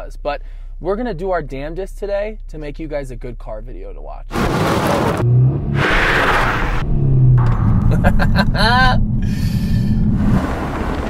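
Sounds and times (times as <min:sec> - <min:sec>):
car engine low rumble: 0:00.0 - 0:11.0
wind rushing: 0:05.7 - 0:11.0.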